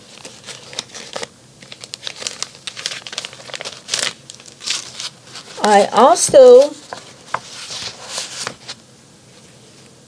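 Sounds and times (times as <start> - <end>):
plastic packaging crinkling: 0.0 - 8.8.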